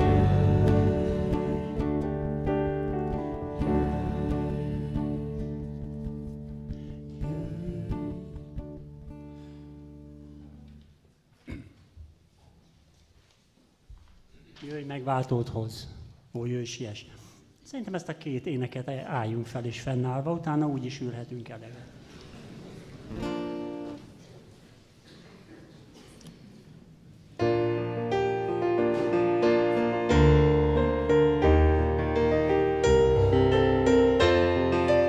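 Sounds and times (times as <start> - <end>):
acoustic guitar chord ringing: 0.0 - 10.4.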